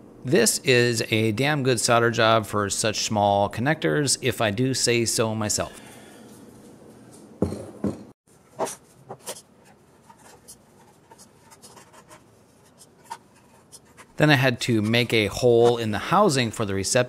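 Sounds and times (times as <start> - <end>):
small tool clicking and scratching plastic: 8.6 - 14.2.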